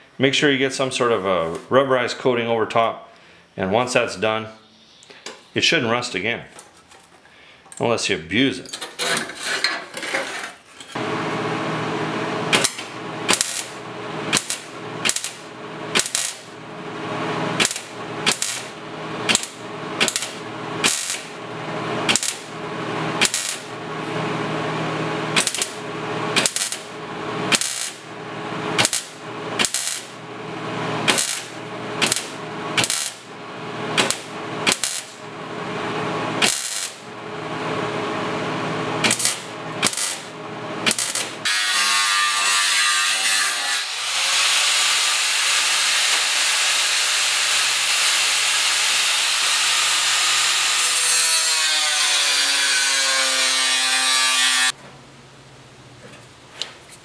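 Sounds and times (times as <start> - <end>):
tack welds crackling: 12.5 - 16.6, 17.3 - 24.2, 25.2 - 35.3, 36.3 - 37.2, 39.0 - 43.0.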